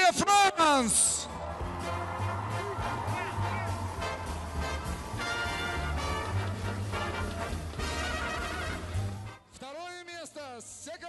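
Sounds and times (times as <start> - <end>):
music with steady bass line: 1.6 - 9.2.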